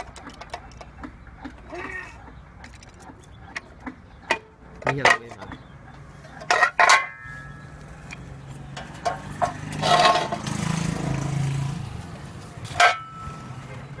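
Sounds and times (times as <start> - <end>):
steel plate clanking on concrete: 4.3 - 5.6, 6.3 - 7.7, 8.7 - 10.8, 12.7 - 13.4
metallic ring: 12.7 - 13.6.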